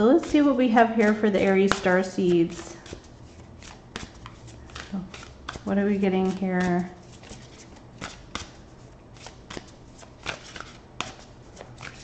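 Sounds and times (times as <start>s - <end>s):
cards being shuffled: 1.6s - 12.0s.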